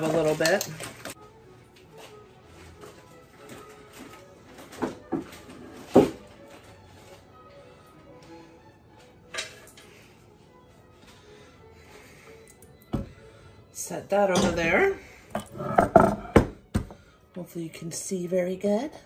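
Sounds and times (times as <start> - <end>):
soft background music: 0.0 - 19.0
kitchen knocks and clunks: 4.8 - 6.2, 15.4 - 17.0.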